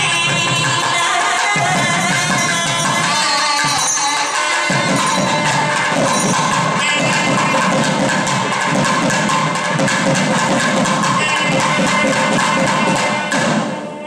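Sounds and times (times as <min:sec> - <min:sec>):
fast drumming: 0:00.0 - 0:14.0.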